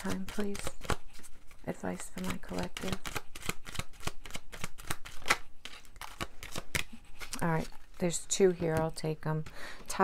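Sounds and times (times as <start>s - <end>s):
cards shuffled by hand: 0.0s - 9.5s.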